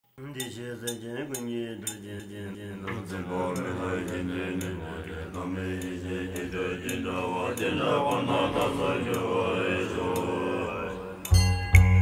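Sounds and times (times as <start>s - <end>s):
monks chanting in deep voices: 0.2s - 11.4s.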